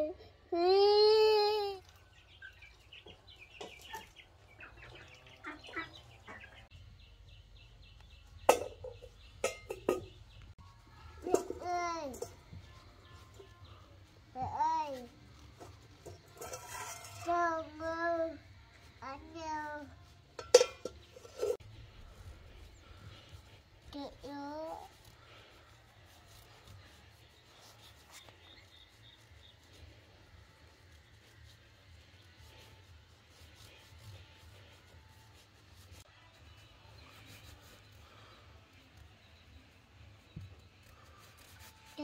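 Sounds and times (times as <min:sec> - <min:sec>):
toddler crying: 0:00.0 - 0:01.8.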